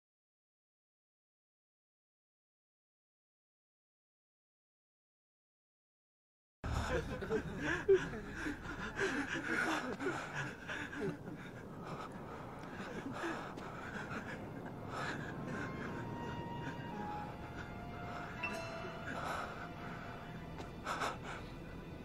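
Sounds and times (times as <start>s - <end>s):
heavy gasping breaths: 6.6s - 22.0s
soft dramatic score: 6.6s - 22.0s.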